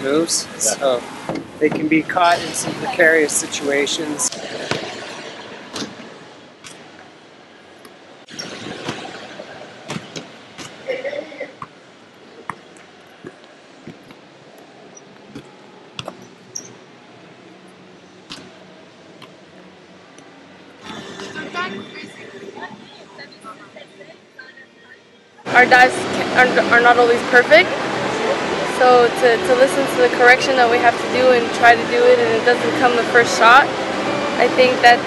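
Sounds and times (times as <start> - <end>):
ball kicked and bouncing: 12.4 - 14.2, 15.2 - 16.7.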